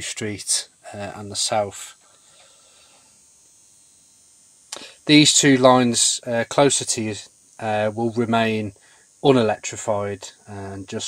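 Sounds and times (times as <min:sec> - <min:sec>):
high-pitched hiss: 0:00.0 - 0:11.0.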